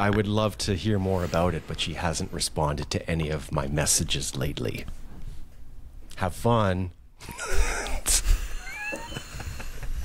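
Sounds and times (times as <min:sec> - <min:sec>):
men laughing: 0:07.2 - 0:10.0.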